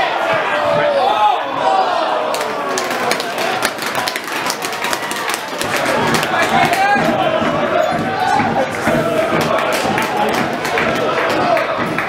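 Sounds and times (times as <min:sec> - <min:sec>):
distant crowd voices: 0:00.0 - 0:12.0
sharp claps and knocks: 0:02.3 - 0:12.0.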